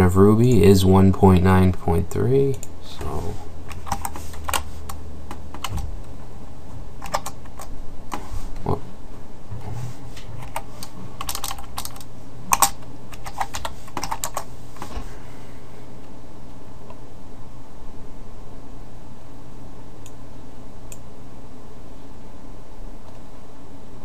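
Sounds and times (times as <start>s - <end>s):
steady low hum: 0.0s - 24.0s.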